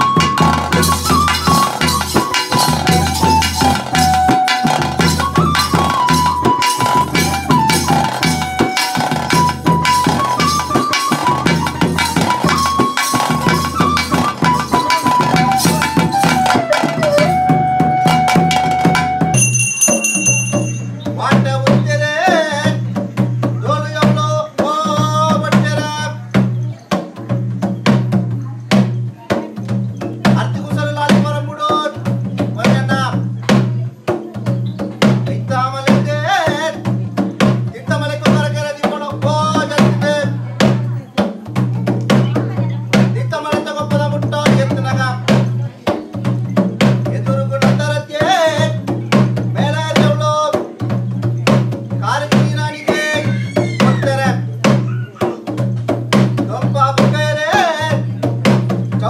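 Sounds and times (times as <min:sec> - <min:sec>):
flute melody: 0:00.0 - 0:21.2
drums beaten in quick rhythm: 0:00.0 - 0:59.0.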